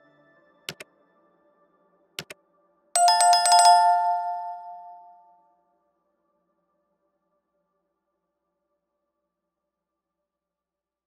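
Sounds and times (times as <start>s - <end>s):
notification bell chime: 3.0s - 5.3s.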